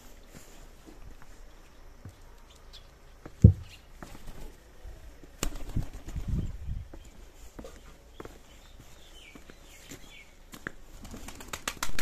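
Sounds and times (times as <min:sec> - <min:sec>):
birds chirping: 0:00.0 - 0:10.9
sharp clicks like wings flapping: 0:05.4 - 0:06.3, 0:11.0 - 0:12.0.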